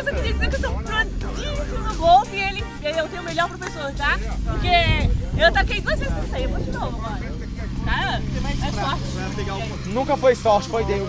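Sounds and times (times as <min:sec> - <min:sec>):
background music with bass line: 0:00.0 - 0:11.0
people talking: 0:00.0 - 0:11.0.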